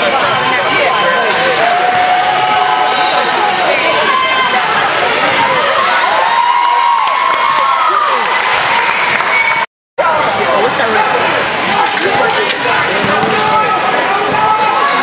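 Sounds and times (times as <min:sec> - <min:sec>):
voices of players and spectators: 0:00.0 - 0:15.0
basketball bouncing: 0:13.0 - 0:13.5.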